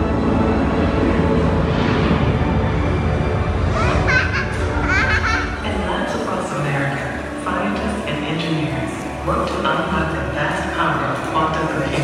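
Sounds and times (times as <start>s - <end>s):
children calling out: 3.7s - 5.6s.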